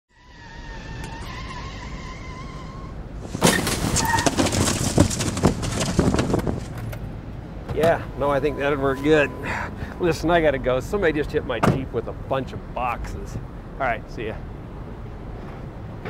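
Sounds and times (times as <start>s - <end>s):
vehicle humming: 0.1s - 16.0s
cardboard boxes knocking and tumbling: 3.3s - 6.8s.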